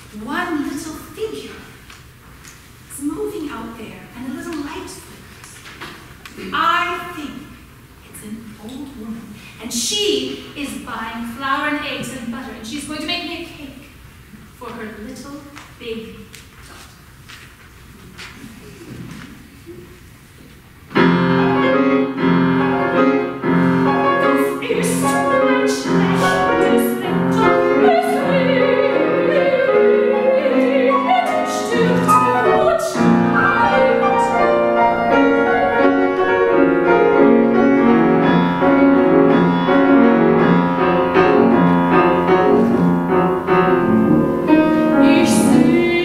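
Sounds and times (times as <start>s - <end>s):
grand piano chords: 20.9s - 46.0s.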